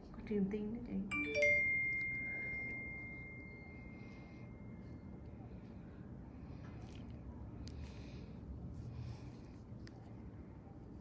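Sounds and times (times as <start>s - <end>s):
high bell-like chime tone: 1.1s - 5.1s.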